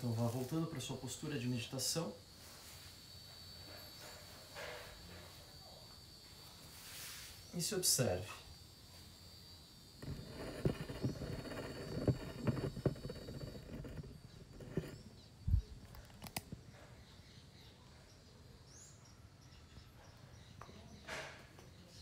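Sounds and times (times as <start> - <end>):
sharp clicks: 15.8 - 16.6.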